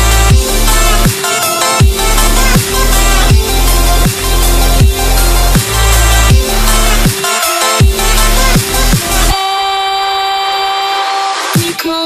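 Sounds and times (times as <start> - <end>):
dubstep background music: 0.0 - 12.0.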